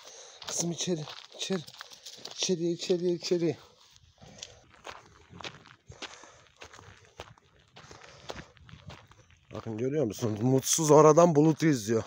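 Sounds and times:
footsteps walking: 0:00.0 - 0:12.0.

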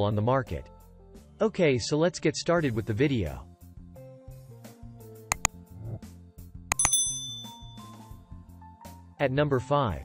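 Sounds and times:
light background music: 0:00.0 - 0:05.9, 0:06.7 - 0:10.0
mouse click sound effect: 0:06.7 - 0:07.0
notification bell ding: 0:06.7 - 0:08.0.

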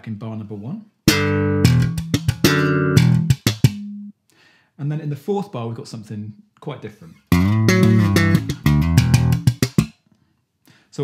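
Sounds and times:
slap bass funk phrase: 0:01.1 - 0:04.1, 0:07.3 - 0:09.9.

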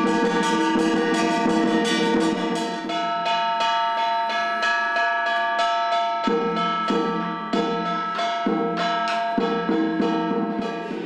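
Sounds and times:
metallic percussion strikes: 0:00.0 - 0:11.0.

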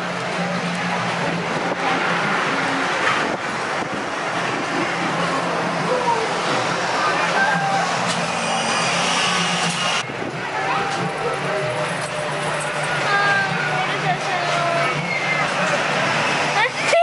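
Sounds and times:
low hum: 0:00.0 - 0:16.9
continuous noisy rush: 0:00.0 - 0:17.0.

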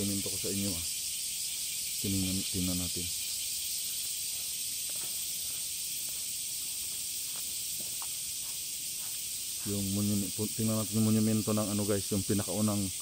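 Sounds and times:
insects droning hiss: 0:00.0 - 0:13.0.

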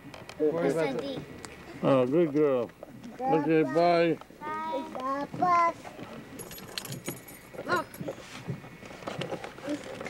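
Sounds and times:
light clinking and rattling: 0:06.3 - 0:08.2.

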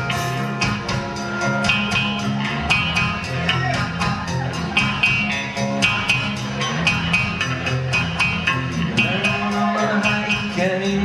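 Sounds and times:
bass guitar: 0:00.0 - 0:11.0
electric guitars: 0:00.0 - 0:11.0
steady drumbeat: 0:00.0 - 0:11.0.

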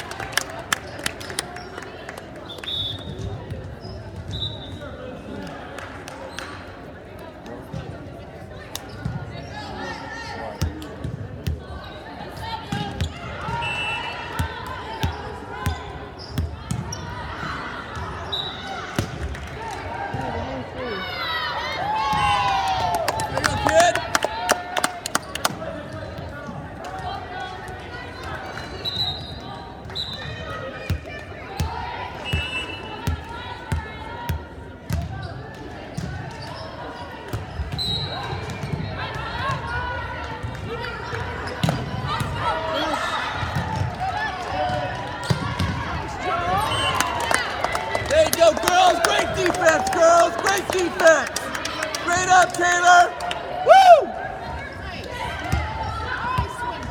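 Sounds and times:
crowd shouting and cheering: 0:09.2 - 0:56.9
players calling out: 0:19.6 - 0:25.8, 0:41.2 - 0:56.9.

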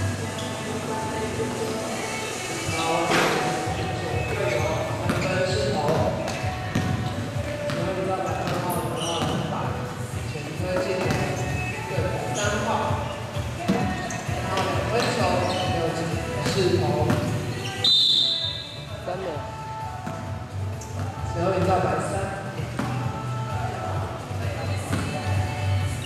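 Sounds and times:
basketball bouncing on wooden floor: 0:04.3 - 0:09.5, 0:10.8 - 0:11.4, 0:16.4 - 0:17.4, 0:22.8 - 0:23.0.

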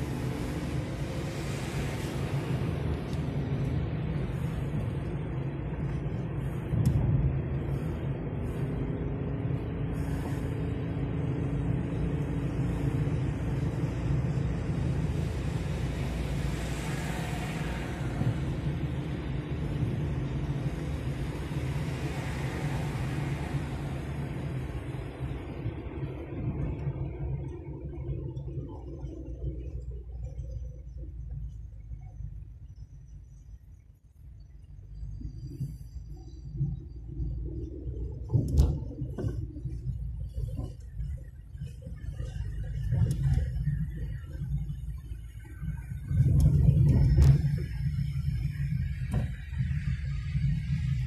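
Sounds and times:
car engine and tyre rumble: 0:00.0 - 0:51.0.

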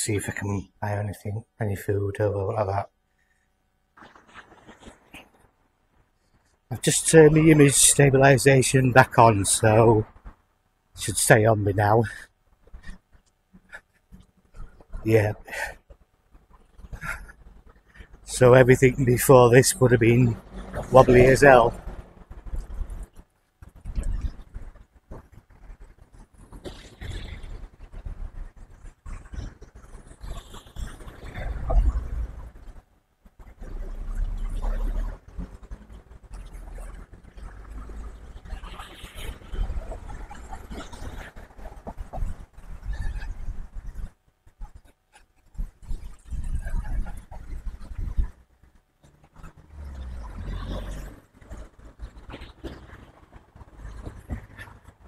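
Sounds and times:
wind buffeting a microphone: 0:16.6 - 0:32.8, 0:33.4 - 0:48.4.

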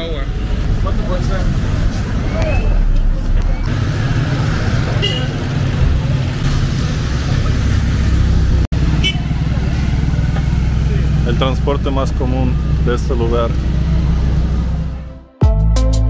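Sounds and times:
street traffic engine hum: 0:00.0 - 0:15.3.

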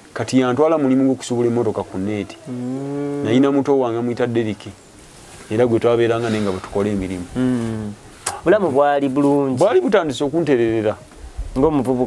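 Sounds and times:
man speaking: 0:00.2 - 0:04.8, 0:05.5 - 0:11.0
man humming a drawn-out vowel: 0:01.8 - 0:03.6, 0:07.3 - 0:08.0.

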